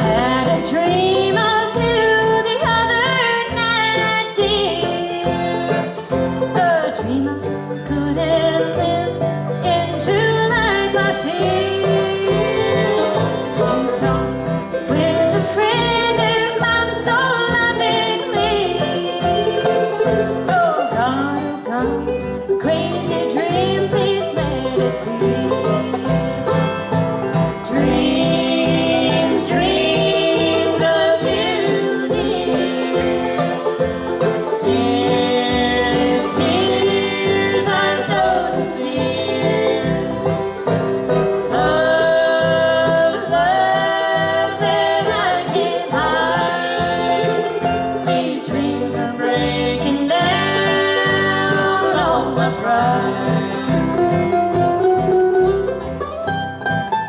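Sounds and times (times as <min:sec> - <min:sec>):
acoustic guitar: 0:00.0 - 0:57.0
banjo: 0:00.0 - 0:57.0
fiddle: 0:00.0 - 0:57.0
mandolin: 0:00.0 - 0:57.0
upright bass: 0:00.0 - 0:57.0.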